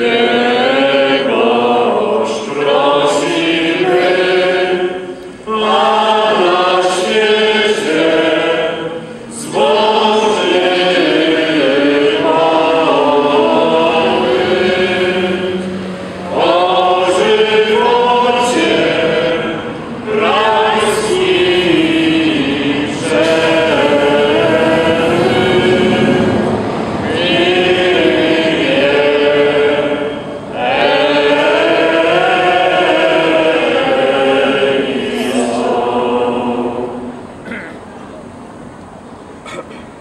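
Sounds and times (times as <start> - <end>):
group singing in unison: 0.0 - 37.7.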